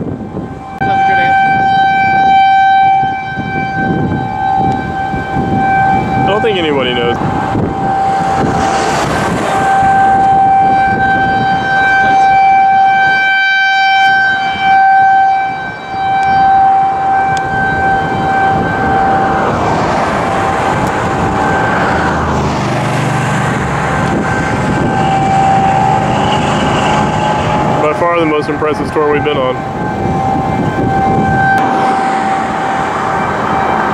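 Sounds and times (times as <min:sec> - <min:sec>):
passing traffic: 0:00.0 - 0:33.9
tornado siren steady tone: 0:00.0 - 0:33.9
wind: 0:00.0 - 0:33.9.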